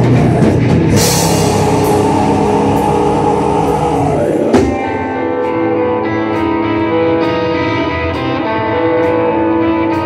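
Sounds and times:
fast drumming: 0.0 - 5.1
distorted electric guitar: 0.0 - 10.0
cymbal crash: 1.0 - 5.8.

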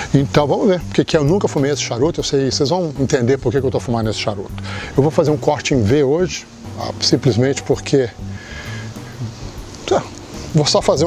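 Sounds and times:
soft lounge music: 0.0 - 11.0.

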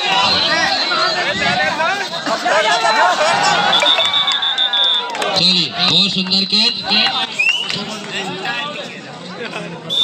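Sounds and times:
spectators shouting and cheering: 0.0 - 10.0
referee's whistle long blast: 3.6 - 5.2.

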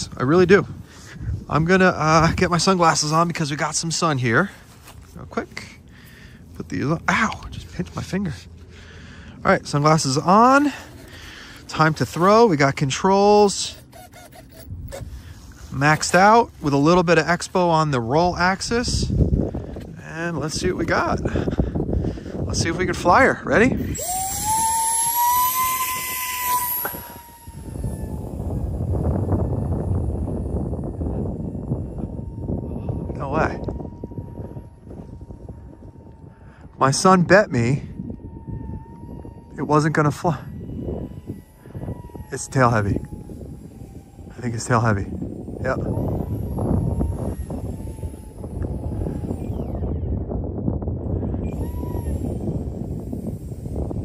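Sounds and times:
electric motor and propeller whining: 0.0 - 54.0
wind rumbling on microphone: 0.0 - 54.0.

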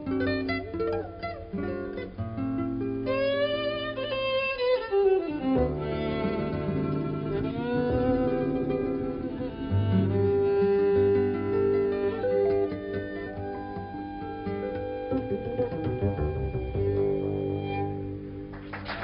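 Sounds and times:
acoustic guitar: 0.0 - 19.0
electric guitar: 0.0 - 19.0
jazz violin melody: 0.1 - 18.5
double bass: 5.7 - 12.0, 14.8 - 18.5.

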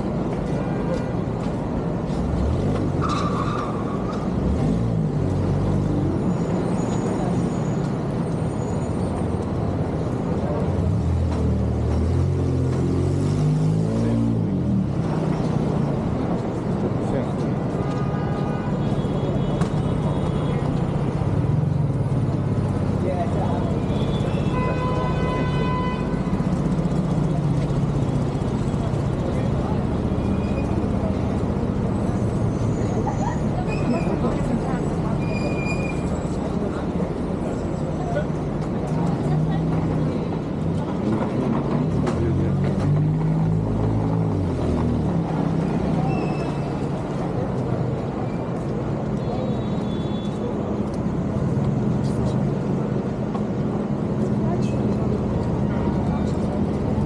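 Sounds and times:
indistinct voices of passers-by: 0.0 - 57.0
traffic on road: 0.0 - 57.0.

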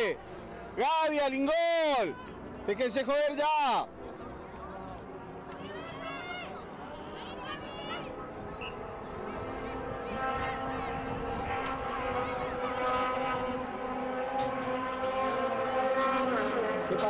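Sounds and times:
motor engine drone: 0.0 - 17.0
faint distant voices: 3.8 - 14.0.

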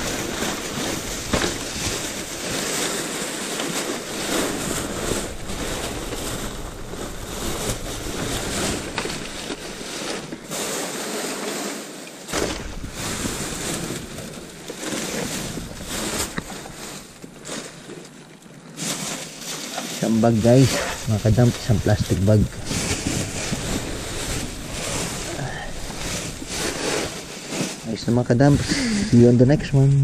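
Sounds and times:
plastic trash bags rustling: 0.0 - 30.0.

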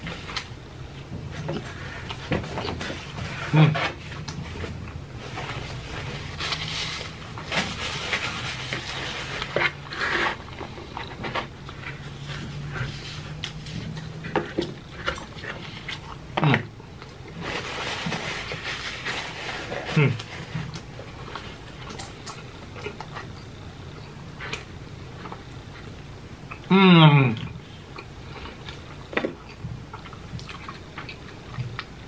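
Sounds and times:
low steady hum: 0.0 - 32.0
chewing and lip-smacking: 20.7 - 26.7, 27.9 - 32.0.

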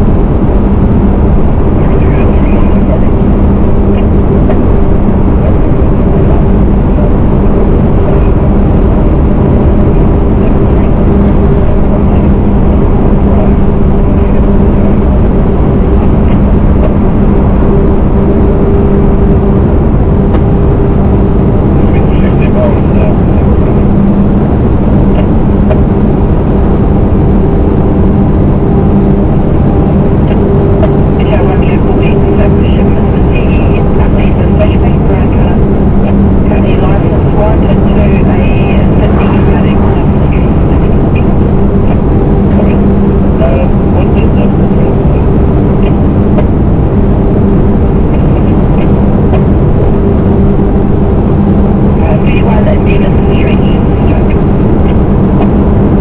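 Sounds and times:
diesel truck engine drone: 0.0 - 56.0
rushing wind: 0.0 - 56.0.

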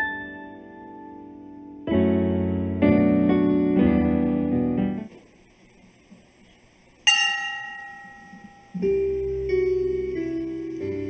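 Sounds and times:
bell ringing: 7.1 - 9.2.

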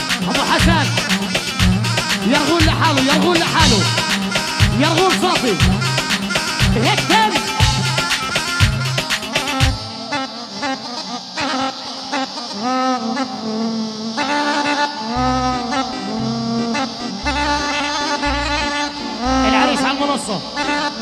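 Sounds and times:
heavy drum beats: 0.0 - 9.9
brass-like lead melody: 0.0 - 12.5, 14.2 - 21.0.

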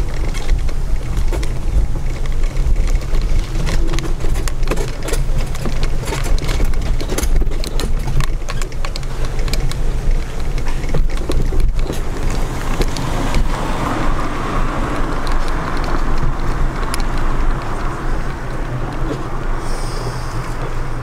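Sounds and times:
clicks and rattles over paving: 0.0 - 21.0
mobility scooter motor hum: 0.0 - 21.0.

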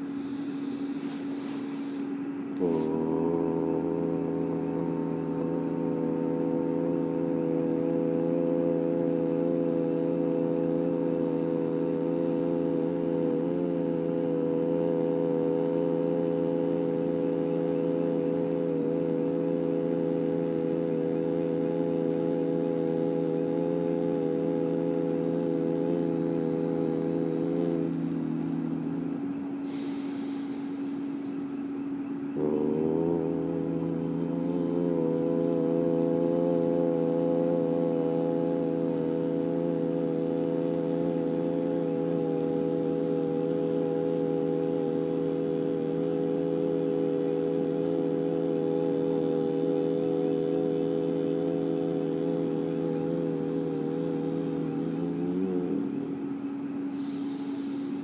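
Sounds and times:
ambient droning chord: 0.0 - 58.0
soft high hiss: 0.0 - 58.0.

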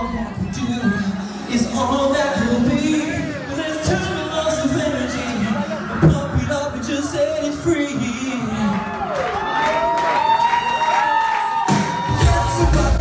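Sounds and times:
live pop music with singing: 0.0 - 10.0, 11.4 - 13.0.

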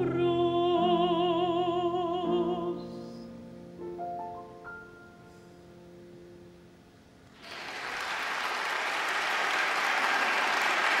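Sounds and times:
piano notes: 0.0 - 7.2
audience applause: 7.4 - 11.0.

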